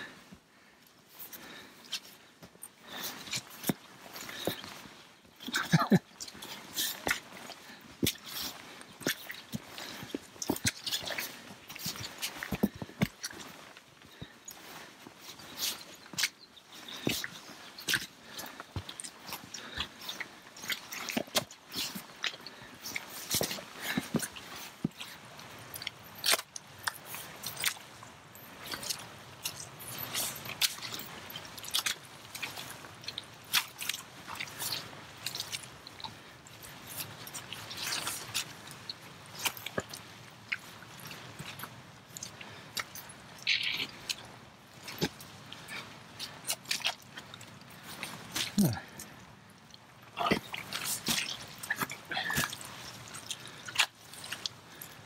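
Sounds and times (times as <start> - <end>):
rustling of gear and vegetation: 0.0 - 55.0
footsteps squelching in mud: 1.1 - 55.0.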